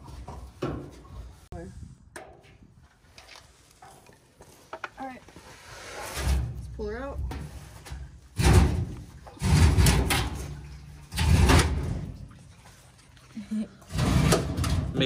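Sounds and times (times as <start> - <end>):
fuel tank scraping on ground: 5.4 - 12.2, 13.9 - 15.0.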